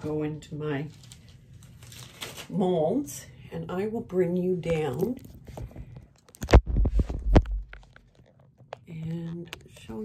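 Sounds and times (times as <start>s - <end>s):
phone handling knocks and rubs: 6.4s - 8.0s.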